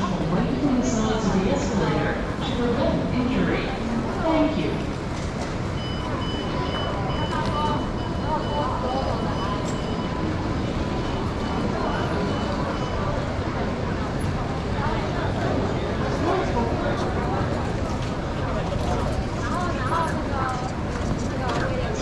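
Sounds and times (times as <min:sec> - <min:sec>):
indistinct crowd voices: 0:00.0 - 0:22.0.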